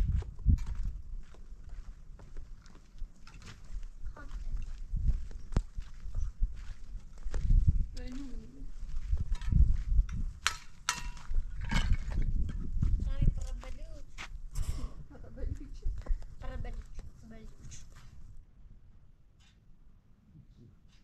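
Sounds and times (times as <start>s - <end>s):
people talking: 4.1s - 4.6s, 8.0s - 8.7s, 13.0s - 14.1s, 15.1s - 17.9s.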